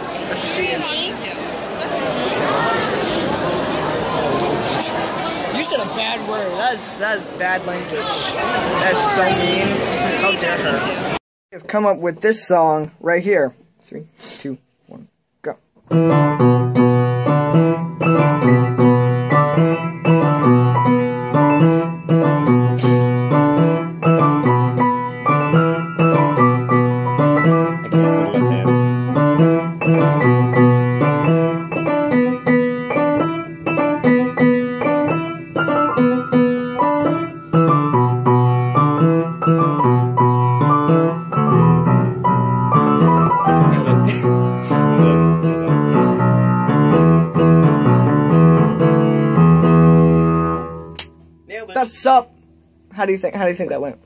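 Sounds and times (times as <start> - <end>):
keyboard playing repeating melody: 15.9 - 50.8.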